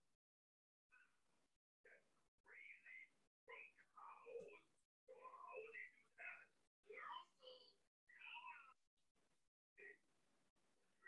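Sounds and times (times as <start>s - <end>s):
faint whispered speech: 1.8s - 8.8s, 9.8s - 10.1s.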